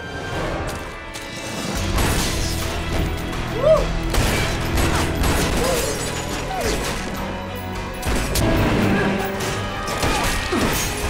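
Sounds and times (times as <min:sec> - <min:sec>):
dramatic background music: 0:00.0 - 0:11.0
rapid gunshots: 0:04.0 - 0:07.2.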